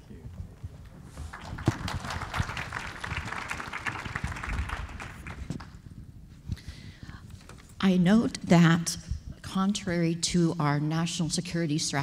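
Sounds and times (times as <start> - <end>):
audience applause: 1.2 - 5.7.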